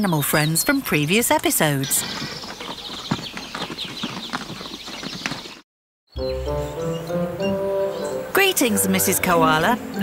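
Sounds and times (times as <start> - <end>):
horses galloping: 1.4 - 5.6.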